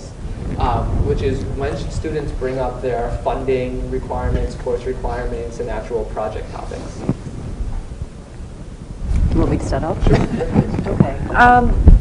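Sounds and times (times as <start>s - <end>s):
faint room noise: 0.0s - 12.0s
low rumble: 0.0s - 12.0s.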